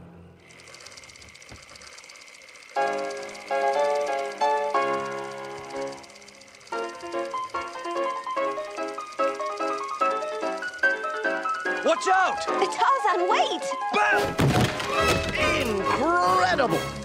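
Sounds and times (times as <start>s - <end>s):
film projector whirring and clattering: 0.4s - 16.6s.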